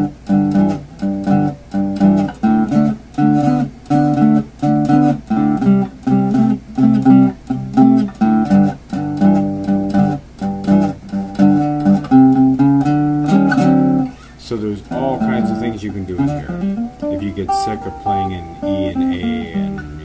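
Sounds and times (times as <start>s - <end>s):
fingerpicked acoustic blues guitar: 0.0s - 20.0s.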